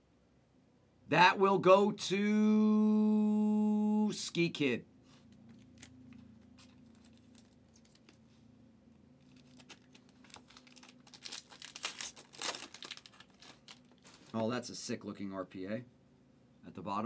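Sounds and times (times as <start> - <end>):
plastic sleeve crinkling: 5.3 - 8.4, 9.2 - 14.6
foil wrapper tearing: 6.6 - 8.2, 9.2 - 14.4.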